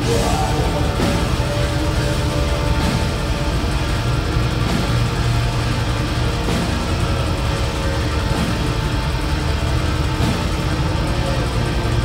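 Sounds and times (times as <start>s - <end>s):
metal band playing loud: 0.0s - 12.0s.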